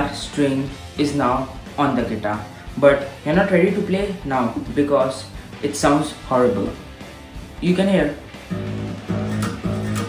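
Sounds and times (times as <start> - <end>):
out-of-tune low guitar string plucked: 8.5 - 10.0.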